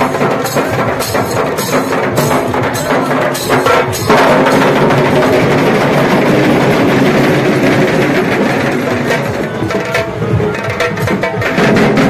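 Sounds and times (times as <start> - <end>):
barrel drums beaten fast: 0.0 - 12.0.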